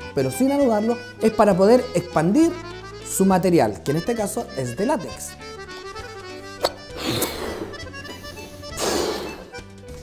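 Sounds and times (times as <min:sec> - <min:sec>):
background music: 0:00.0 - 0:10.0
balloon blown up by mouth: 0:06.6 - 0:07.9, 0:08.7 - 0:09.6.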